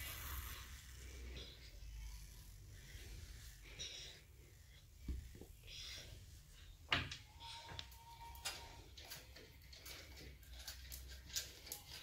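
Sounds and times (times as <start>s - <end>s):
hissy breaths: 0.0s - 8.0s.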